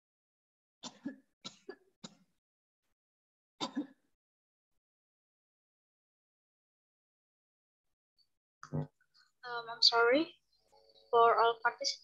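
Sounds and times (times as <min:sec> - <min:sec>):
person coughing: 0:03.6 - 0:04.0.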